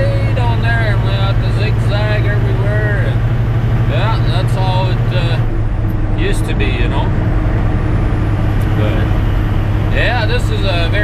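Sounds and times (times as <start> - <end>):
diesel truck engine drone: 0.0 - 11.0.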